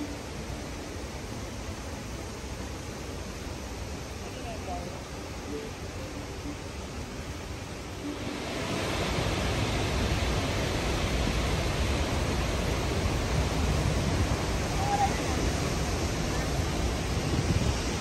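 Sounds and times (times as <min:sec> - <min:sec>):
river water rushing over rapids: 0:00.0 - 0:18.0.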